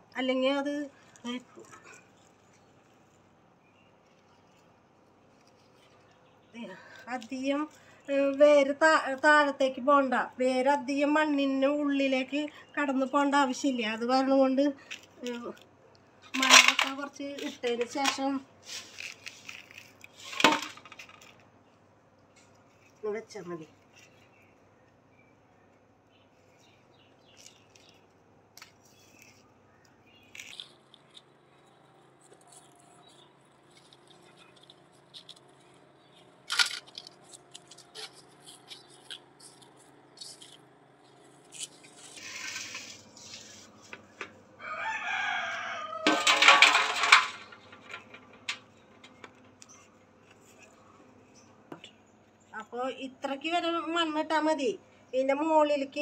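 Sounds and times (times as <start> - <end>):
faint rustling of soil: 0.0 - 55.2
hands rustling potting soil: 17.0 - 20.4, 41.0 - 45.6
rooster crowing: 44.6 - 46.4
metal basin clanking on concrete: 46.1 - 48.6.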